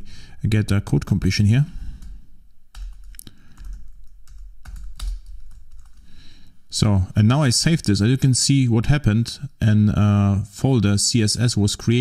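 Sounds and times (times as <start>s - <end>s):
keyboard key presses: 2.0s - 6.0s.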